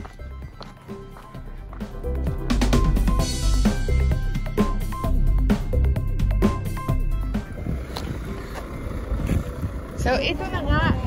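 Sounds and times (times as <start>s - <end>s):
background music with drum hits: 0.0s - 8.1s
coach engine idling: 0.0s - 11.0s.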